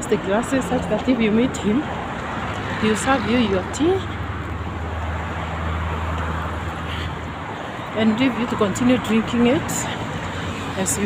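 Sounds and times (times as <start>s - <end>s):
vehicle low rumble: 0.0s - 11.0s.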